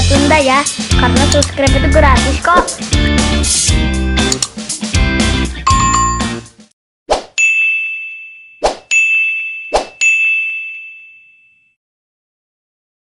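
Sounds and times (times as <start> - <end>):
guitar background music: 0.0 - 6.6
sharp click: 1.3 - 1.5, 4.3 - 4.6
bright bell ding: 5.7 - 6.4, 7.4 - 11.8.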